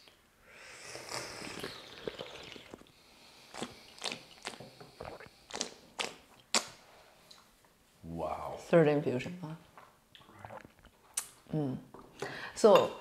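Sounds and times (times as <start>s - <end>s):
tea slurped: 0.9s - 6.2s, 10.2s - 11.0s
mouth clicks and smacks: 3.5s - 7.4s, 10.1s - 11.5s.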